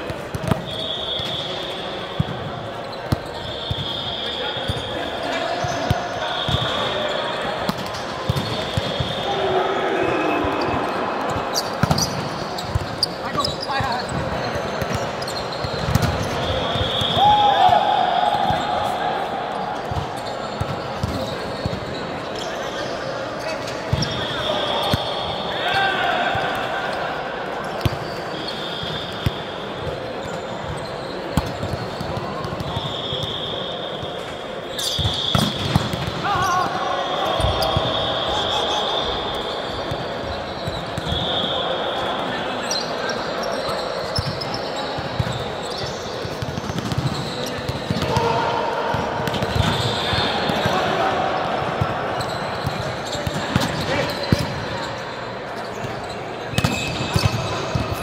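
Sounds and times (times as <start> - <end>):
players' voices and calls: 0.0 - 58.0.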